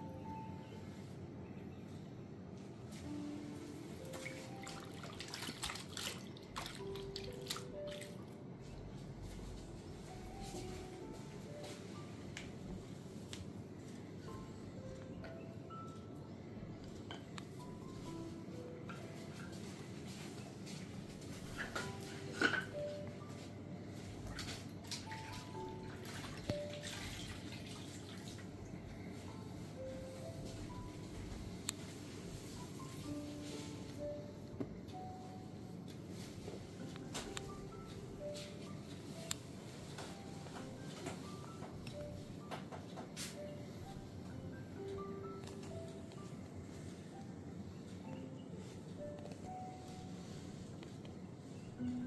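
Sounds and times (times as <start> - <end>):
faint background music: 0.0 - 52.0
water splashing and dripping: 4.2 - 8.1, 24.4 - 28.5
wet cloth splashing in water: 4.2 - 8.1.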